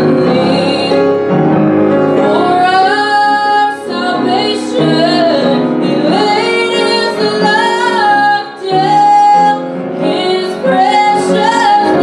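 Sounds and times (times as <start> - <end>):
woman singing a hymn: 0.0 - 1.2, 2.1 - 12.0
piano accompaniment: 0.0 - 12.0.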